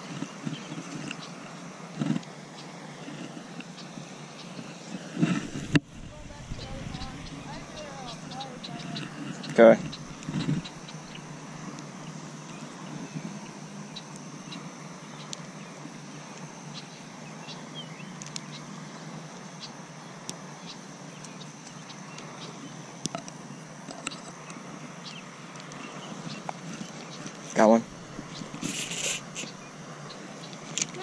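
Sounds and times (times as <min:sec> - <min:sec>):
outdoor background hiss: 0:00.0 - 0:31.0.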